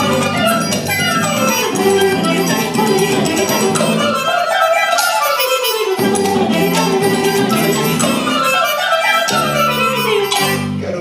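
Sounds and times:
drum kit: 0:00.0 - 0:04.2, 0:06.0 - 0:08.6
strong bass notes: 0:00.0 - 0:04.3, 0:05.8 - 0:11.0
percussion: 0:00.0 - 0:11.0
wind instrument: 0:00.0 - 0:11.0.

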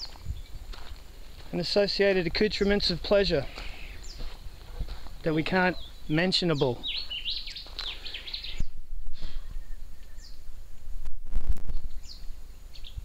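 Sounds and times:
birds chirping: 0:00.0 - 0:10.6, 0:11.7 - 0:13.0
low rumbling bumps: 0:04.0 - 0:06.1.

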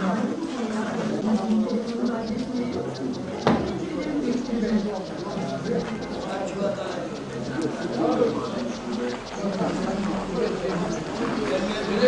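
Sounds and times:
indistinct talk: 0:00.0 - 0:12.0
bird cooing: 0:00.9 - 0:12.0.

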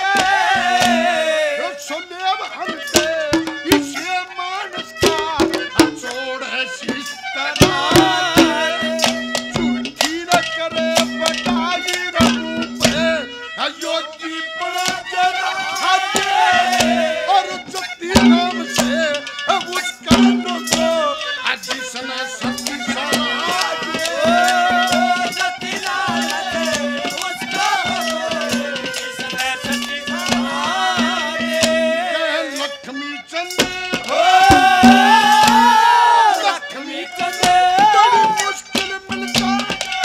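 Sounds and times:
drum strokes: 0:00.0 - 0:01.6, 0:02.9 - 0:04.2, 0:04.8 - 0:06.2, 0:06.8 - 0:13.3, 0:14.8 - 0:32.7, 0:33.5 - 0:40.0
man singing into microphone: 0:00.0 - 0:09.4, 0:10.0 - 0:39.8
folk music accompaniment: 0:00.0 - 0:40.0
sharp drum strokes: 0:33.6 - 0:36.5.

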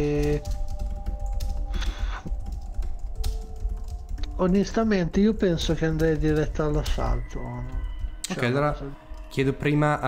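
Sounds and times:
keyboard keys clicking: 0:00.0 - 0:09.8
quiet background music: 0:00.0 - 0:10.0.

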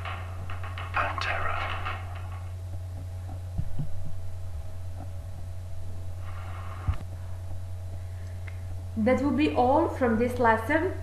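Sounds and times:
low electrical hum: 0:00.0 - 0:11.0
dull low thumps: 0:02.5 - 0:06.2.

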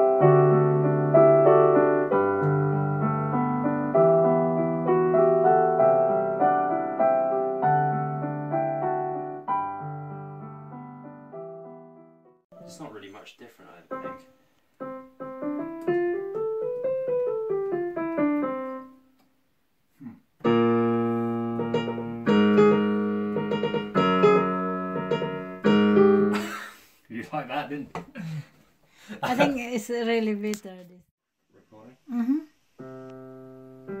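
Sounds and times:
digital piano playing: 0:00.0 - 0:13.2, 0:13.9 - 0:19.0, 0:20.4 - 0:26.4.

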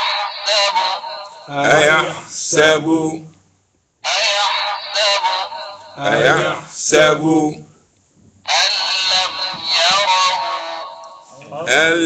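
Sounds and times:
tinny recorded chanting: 0:00.0 - 0:03.4, 0:04.0 - 0:07.8, 0:08.4 - 0:12.0.

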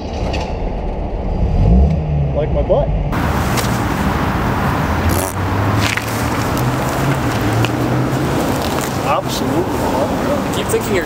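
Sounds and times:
car engine hum: 0:00.0 - 0:11.0
road and wind noise: 0:00.0 - 0:11.0.

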